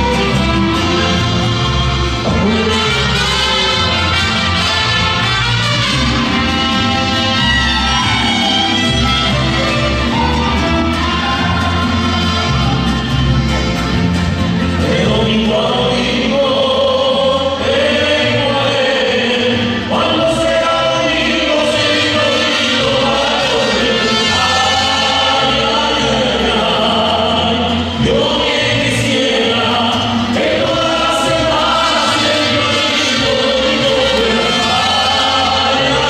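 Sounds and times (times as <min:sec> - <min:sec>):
group singing in chorus: 0:00.0 - 0:14.0, 0:14.6 - 0:36.0
strummed guitars: 0:00.0 - 0:36.0.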